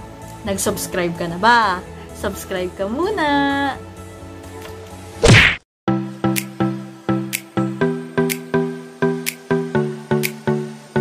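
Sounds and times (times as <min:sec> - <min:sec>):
faint background music: 0:00.0 - 0:05.4.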